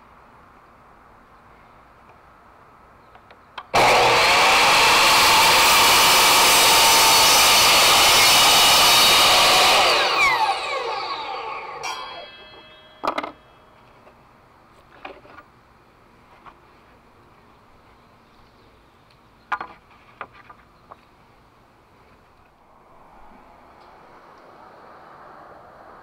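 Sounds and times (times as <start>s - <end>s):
miter saw cutting wood: 3.8s - 13.0s
saw blade spinning down whine: 3.8s - 13.4s.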